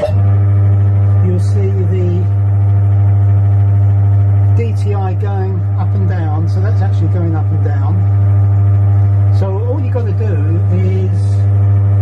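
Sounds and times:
milling machine motor humming: 0:00.0 - 0:12.0.

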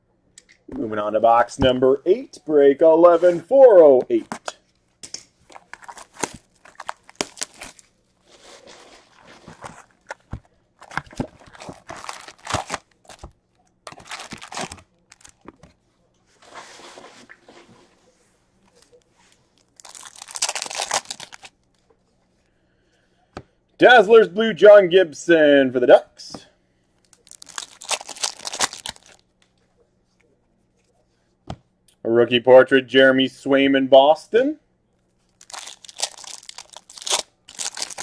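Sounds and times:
foil packs crinkling and tearing: 0:05.5 - 0:07.9, 0:09.1 - 0:13.3, 0:13.9 - 0:15.4, 0:19.6 - 0:21.5, 0:27.1 - 0:29.2, 0:35.4 - 0:38.0.

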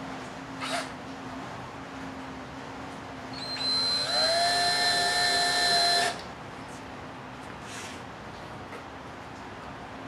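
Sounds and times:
power drill driving screw: 0:03.4 - 0:06.2.

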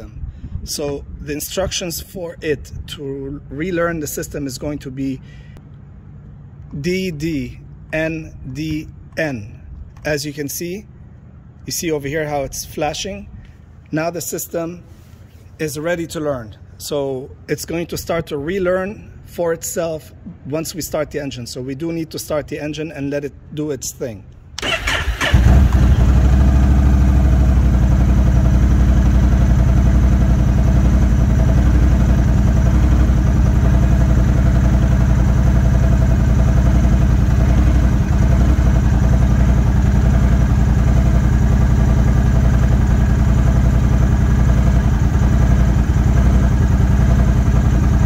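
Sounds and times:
motorcycle engine idling: 0:24.6 - 0:48.0.

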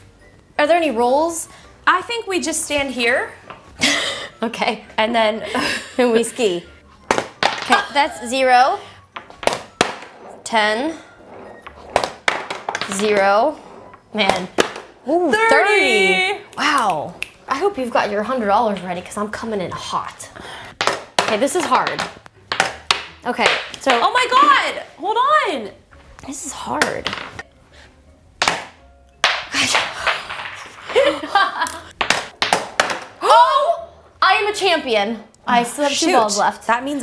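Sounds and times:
wooden balls rolling: 0:07.0 - 0:08.5, 0:09.1 - 0:15.4, 0:20.7 - 0:24.8, 0:26.7 - 0:27.5, 0:28.4 - 0:33.3
balls knocking on plastic ramp: 0:11.8 - 0:13.3, 0:20.8 - 0:24.2, 0:32.0 - 0:33.2.

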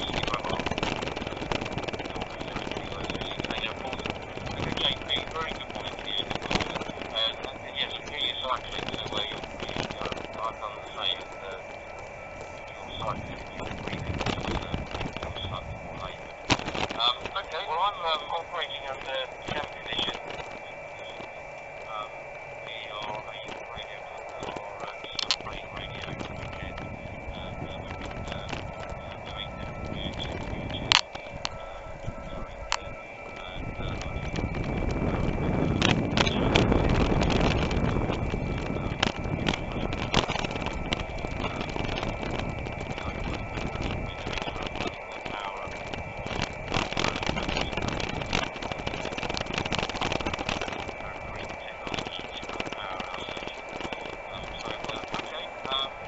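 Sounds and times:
garbled radio voices: 0:00.0 - 0:56.0
morse code tones: 0:00.0 - 0:56.0
wind and road rush: 0:33.6 - 0:44.1.

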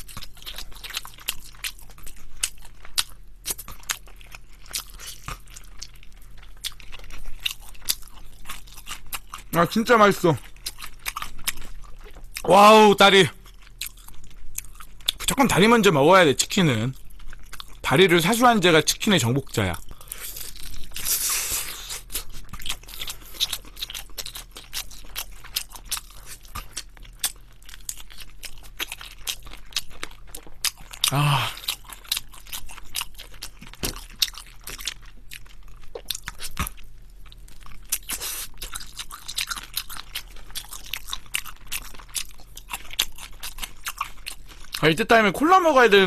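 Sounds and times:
crunchy chewing: 0:00.0 - 0:12.5, 0:13.4 - 0:15.4, 0:19.3 - 0:44.9.

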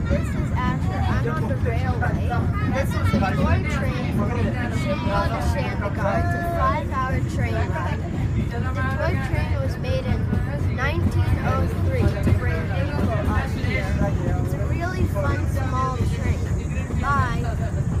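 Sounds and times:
train carriage rumbling on track: 0:00.0 - 0:18.0
voices talking: 0:00.0 - 0:18.0.

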